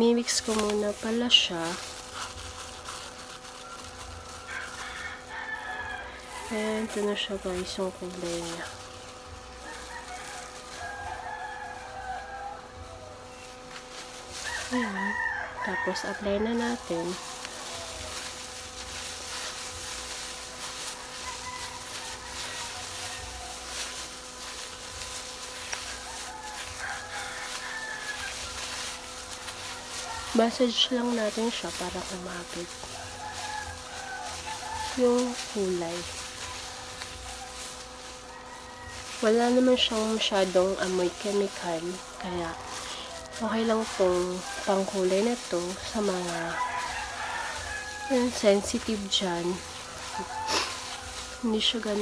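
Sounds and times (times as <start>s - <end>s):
gloved hands mixing in a bowl: 0.0s - 52.0s
steady hum: 0.0s - 52.0s.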